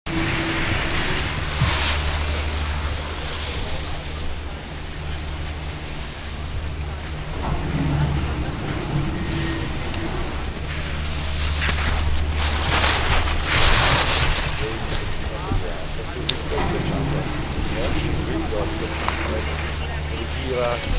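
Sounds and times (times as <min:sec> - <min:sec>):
skis carving and scraping on snow: 0:00.1 - 0:07.0, 0:09.2 - 0:20.9
wind rumbling on microphone: 0:00.1 - 0:20.9.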